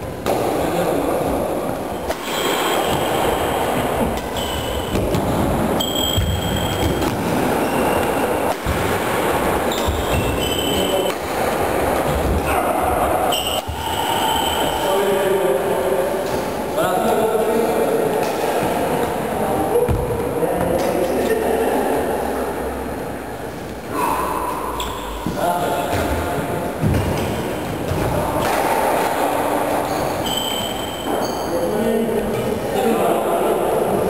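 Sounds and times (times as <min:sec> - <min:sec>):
echoing voices: 0:00.0 - 0:34.0
racket hitting shuttlecock: 0:02.0 - 0:12.2
shoes squeaking on wooden floor: 0:04.0 - 0:08.3, 0:09.7 - 0:11.1.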